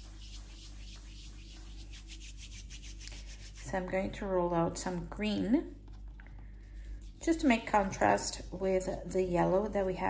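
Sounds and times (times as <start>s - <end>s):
hands rubbing sugar paste: 0.0s - 3.8s, 5.8s - 10.0s.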